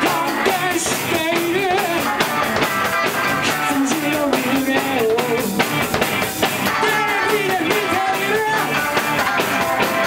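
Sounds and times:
drum kit beat: 0:00.0 - 0:10.0
electric guitars: 0:00.0 - 0:10.0.

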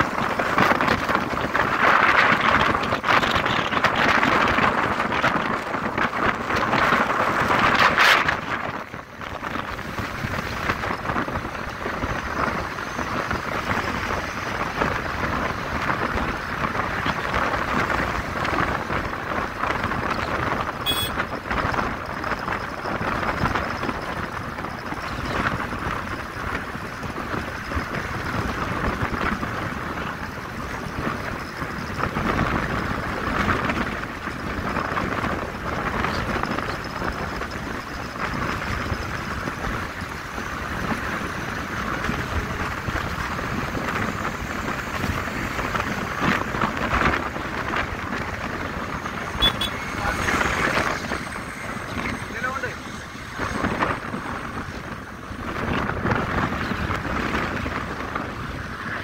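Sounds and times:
vehicle road and engine noise: 0:00.0 - 0:59.0
wind rushing over microphone: 0:00.0 - 0:59.0.

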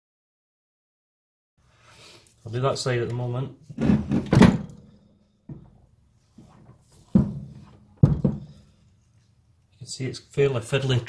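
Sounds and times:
metal parts knocking on workbench: 0:07.1 - 0:08.6.

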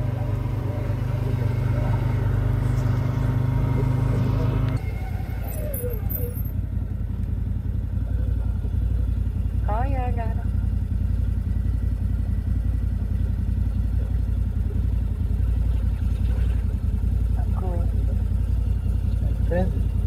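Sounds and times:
engine running low rumble: 0:00.0 - 0:20.0.

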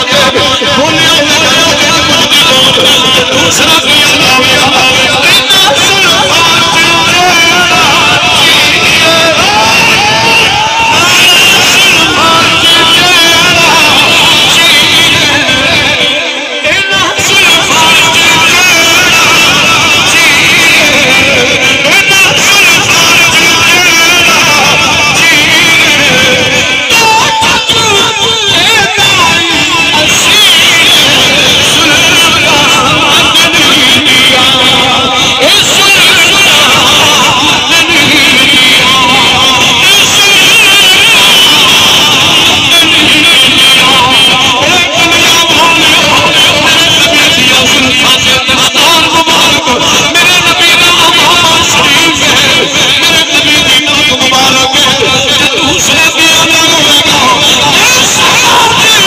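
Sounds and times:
man reciting melodically over loudspeaker: 0:00.0 - 0:59.0.

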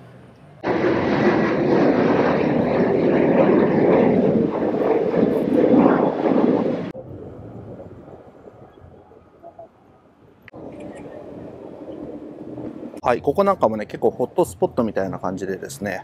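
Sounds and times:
jet airliner passing overhead: 0:00.0 - 0:16.0.

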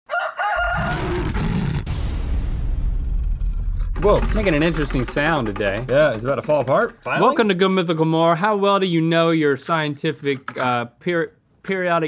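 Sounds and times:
shrill creature-like cries: 0:00.1 - 0:01.8
loud low rumble: 0:01.2 - 0:07.0.

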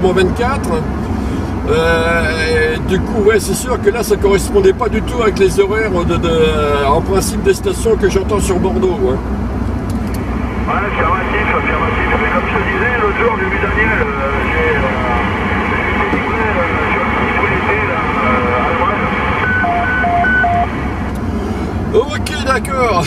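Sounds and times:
car rumble in motion: 0:00.0 - 0:23.0
radio noise: 0:10.6 - 0:20.8
voice over cb radio: 0:10.7 - 0:20.7
two-tone roger beeps: 0:19.4 - 0:20.7.

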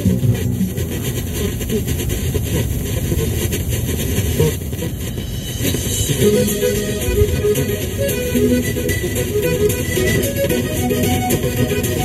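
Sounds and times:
car road and engine rumble: 0:00.0 - 0:12.0
car stereo music: 0:00.0 - 0:12.0.

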